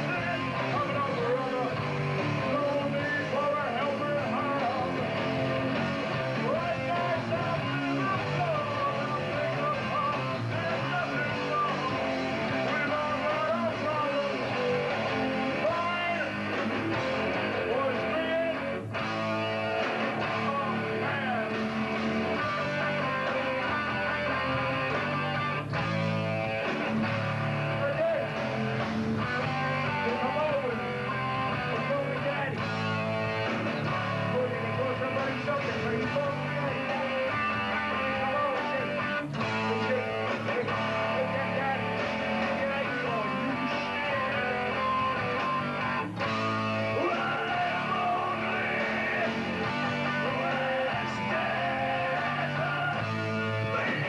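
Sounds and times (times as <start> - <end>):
bass: 0.0 - 54.0
drums: 0.0 - 54.0
loud guitar chords: 0.0 - 54.0.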